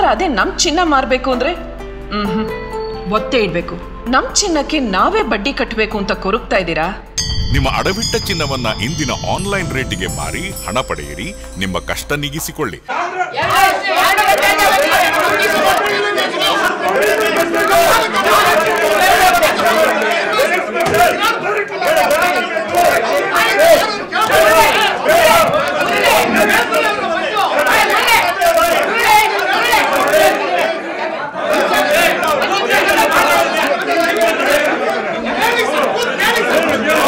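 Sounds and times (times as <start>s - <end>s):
men shouting and arguing: 12.9s - 37.0s.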